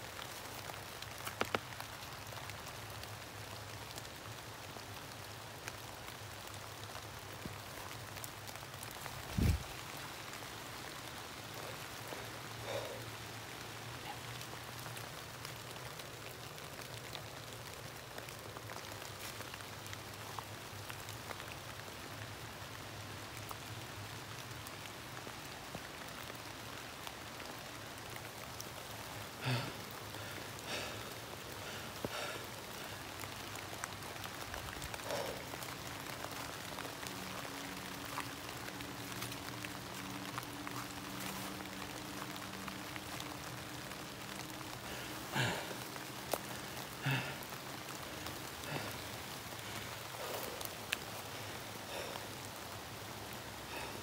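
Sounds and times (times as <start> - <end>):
rain pattering on leaves: 0.0 - 54.0.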